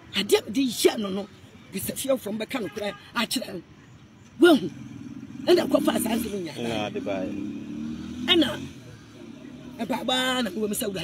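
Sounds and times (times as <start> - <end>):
woman talking: 0.1 - 3.6, 4.4 - 4.7, 5.4 - 6.6, 8.3 - 8.7, 9.8 - 11.0
vehicle engine hum: 4.1 - 11.0.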